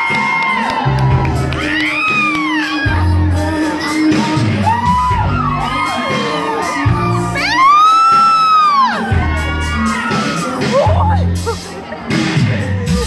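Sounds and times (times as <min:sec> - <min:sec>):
crowd cheering and screaming: 0:00.0 - 0:13.0
loud music with heavy bass: 0:00.0 - 0:13.0
long rising and falling scream: 0:04.6 - 0:10.7.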